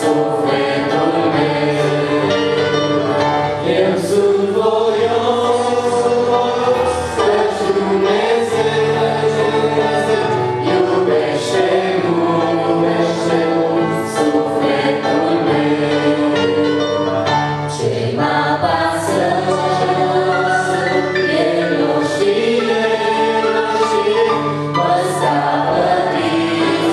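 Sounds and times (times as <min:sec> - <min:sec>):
choir singing in harmony: 0:00.0 - 0:26.9
electric piano: 0:00.0 - 0:26.9.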